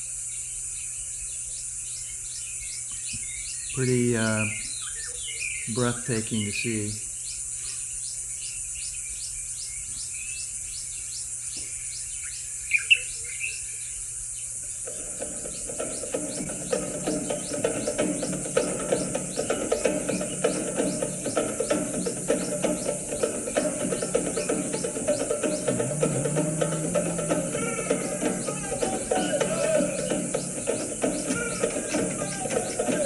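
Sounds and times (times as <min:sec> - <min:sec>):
bird chirps: 0:00.0 - 0:33.0
insects buzzing: 0:00.0 - 0:33.0
background music with beat: 0:15.6 - 0:33.0.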